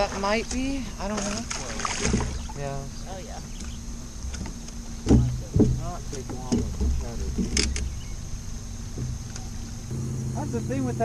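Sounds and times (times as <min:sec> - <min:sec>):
steady low hum: 0:00.0 - 0:11.0
light knocks: 0:04.3 - 0:08.0, 0:08.9 - 0:09.5
heavy thumps on boat deck: 0:04.4 - 0:08.0, 0:08.8 - 0:09.3.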